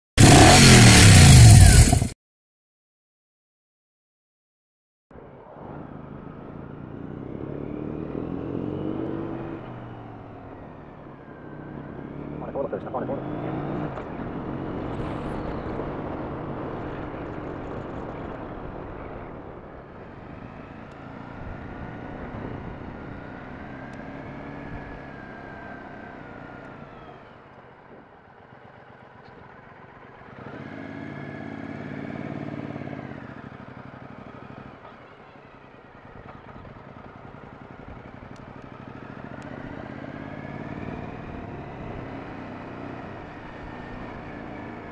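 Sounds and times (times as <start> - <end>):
motorcycle engine: 0.2 - 2.2, 5.8 - 44.9.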